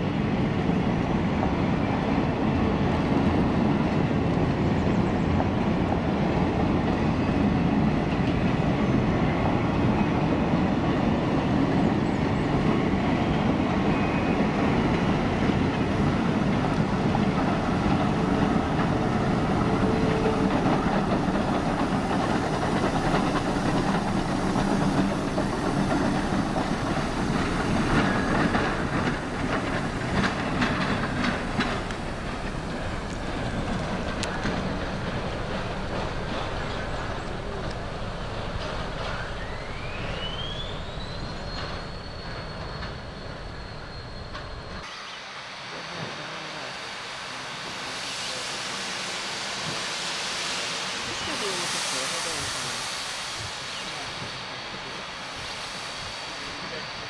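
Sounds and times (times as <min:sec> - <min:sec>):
steam locomotive pushing: 0:00.0 - 0:57.0
train wheels clattering over rail joints: 0:14.8 - 0:44.8.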